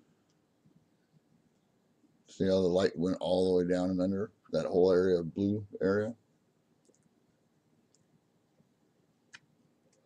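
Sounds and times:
computer mouse clicks: 0:06.8 - 0:07.2, 0:07.9 - 0:08.7.

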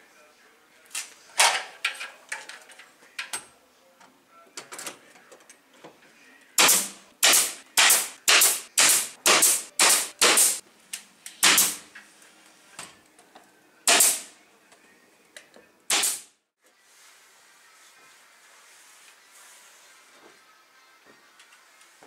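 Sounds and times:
nail gun firing into wood: 0:06.6 - 0:10.6, 0:11.4 - 0:11.8, 0:13.9 - 0:14.3, 0:15.9 - 0:16.3.

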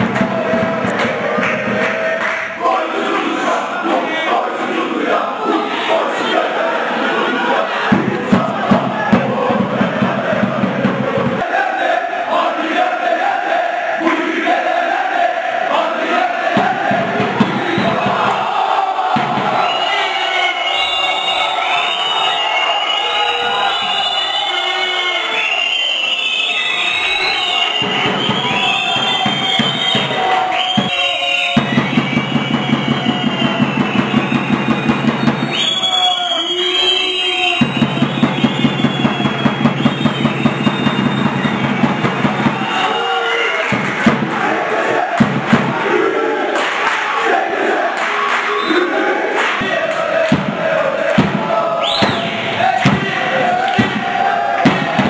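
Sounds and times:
drum beating quick rhythm: 0:00.0 - 0:11.8, 0:12.4 - 0:22.0, 0:27.1 - 0:36.2, 0:37.4 - 0:46.9, 0:47.5 - 0:55.0
crowd chanting and singing: 0:00.0 - 0:55.0.

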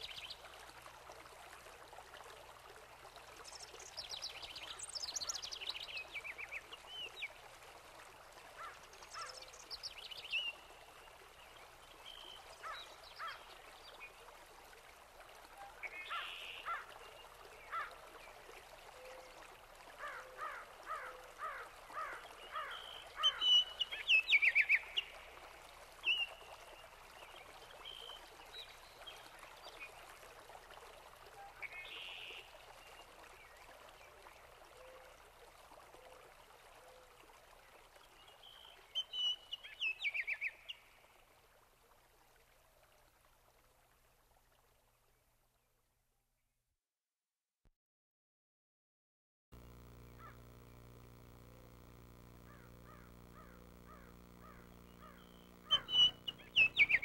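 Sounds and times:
trickle of running water: 0:00.0 - 0:46.4, 0:49.6 - 0:57.0
birds chirping and trilling: 0:22.6 - 0:24.8, 0:52.5 - 0:57.0.

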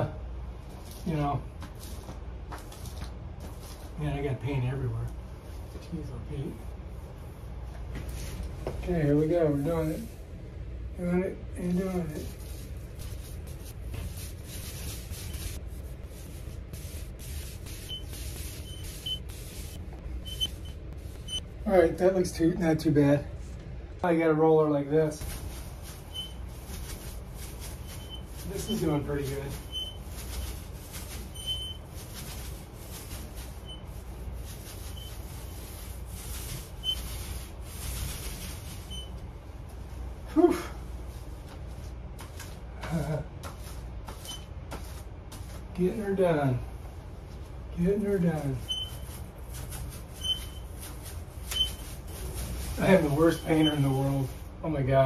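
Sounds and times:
paint roller rasping: 0:12.1 - 0:20.6, 0:25.3 - 0:39.1, 0:48.0 - 0:54.4
short high squeak: 0:48.7 - 0:49.0, 0:50.2 - 0:50.6.

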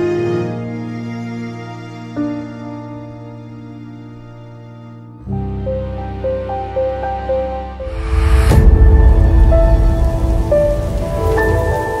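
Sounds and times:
low rumbling wash: 0:07.8 - 0:12.0.

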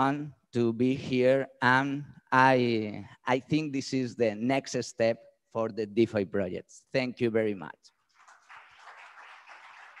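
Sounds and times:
faint audience applause: 0:08.2 - 0:10.0.

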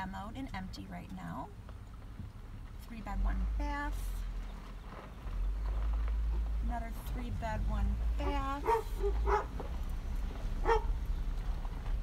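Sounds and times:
car road noise inside cabin: 0:00.0 - 0:12.0
animal bark: 0:08.6 - 0:09.6, 0:10.6 - 0:11.0.

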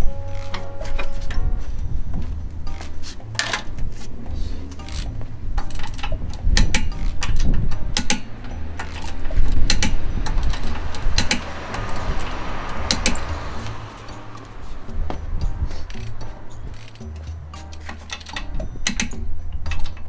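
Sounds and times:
background music with bass: 0:00.0 - 0:20.0
metal wrench clicking: 0:02.7 - 0:04.1, 0:04.7 - 0:20.0.

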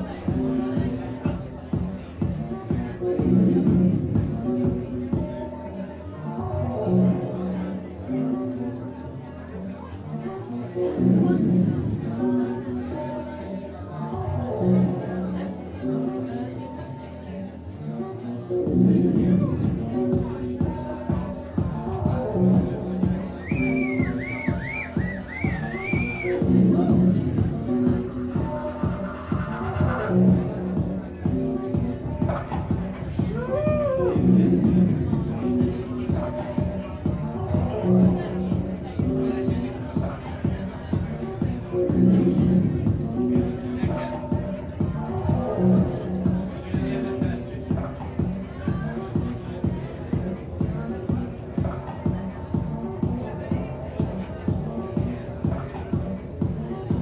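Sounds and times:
synth and bass notes: 0:00.0 - 0:16.6, 0:17.2 - 0:57.0
steady techno drum beat: 0:00.0 - 0:57.0
fast ticking pulse: 0:15.0 - 0:33.5.

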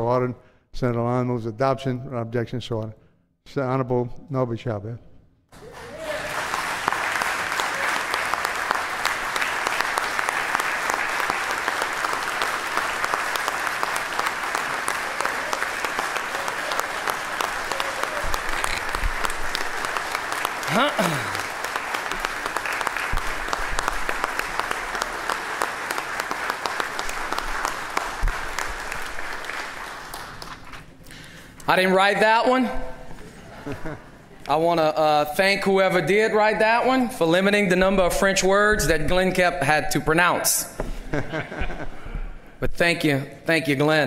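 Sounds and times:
people clapping: 0:05.5 - 0:31.4.

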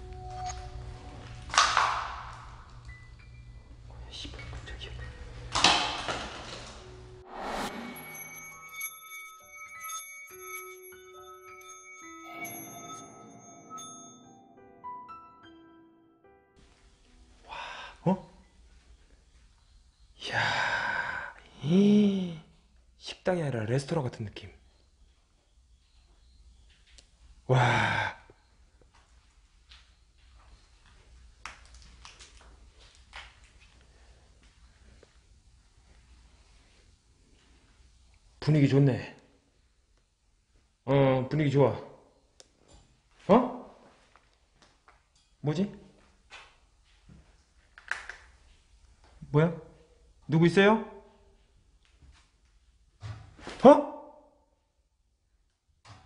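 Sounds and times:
sudden ringing hit: 0:07.1 - 0:10.6.

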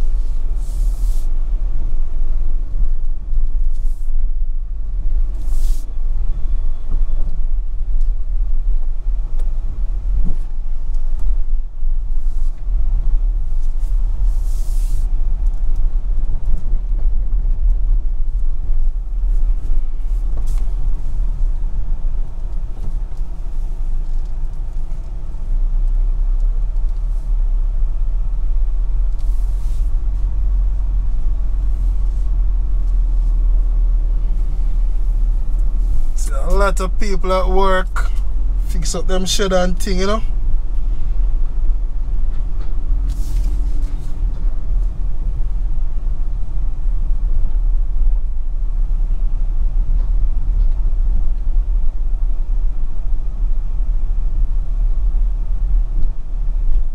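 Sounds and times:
car engine and road rumble: 0:00.0 - 0:56.9.

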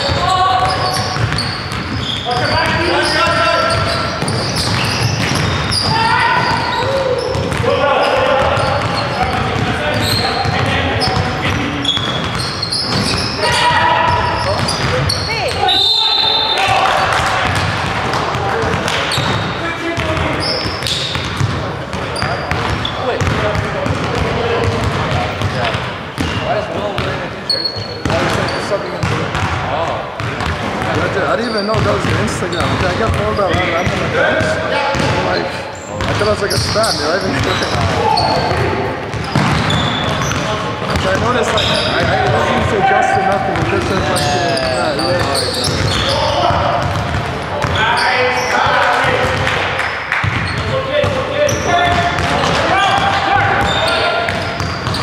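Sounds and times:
basketball bouncing on wooden floor: 0:00.0 - 0:03.0, 0:03.7 - 0:06.6, 0:07.3 - 0:13.3, 0:20.0 - 0:26.4, 0:31.8 - 0:35.3, 0:36.0 - 0:42.4, 0:43.5 - 0:47.8
players calling out: 0:00.0 - 0:55.0
sneakers squeaking: 0:00.0 - 0:55.0.

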